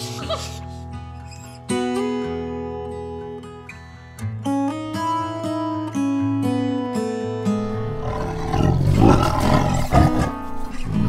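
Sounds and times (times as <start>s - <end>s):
acoustic guitar music: 0.0s - 11.0s
tigers roaring: 7.6s - 11.0s.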